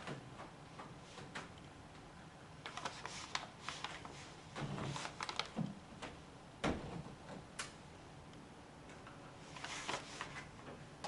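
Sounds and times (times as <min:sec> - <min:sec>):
paper rustle: 0:02.7 - 0:05.7, 0:09.4 - 0:10.5.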